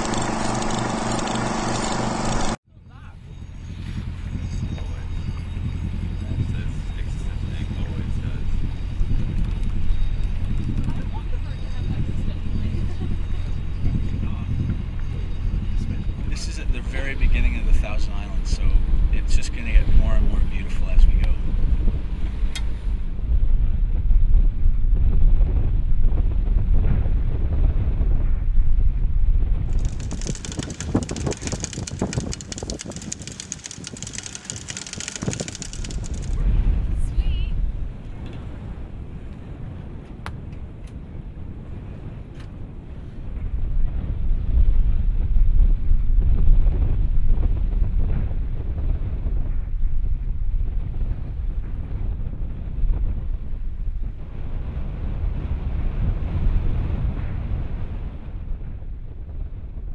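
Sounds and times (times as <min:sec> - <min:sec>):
wind buffeting microphone: 0:03.7 - 0:59.9.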